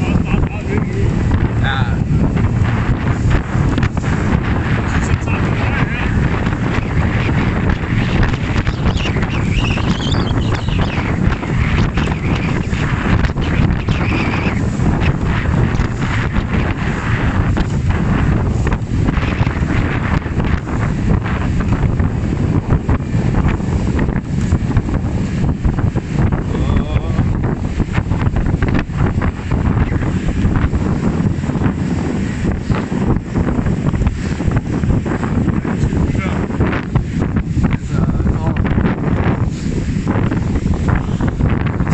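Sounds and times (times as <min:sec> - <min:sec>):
choppy water rushing: 0:00.0 - 0:41.9
wind buffeting microphone: 0:00.0 - 0:41.9.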